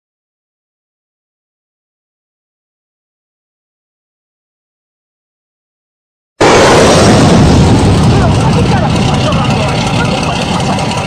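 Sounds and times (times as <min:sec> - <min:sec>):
boat engine running: 0:06.4 - 0:11.0.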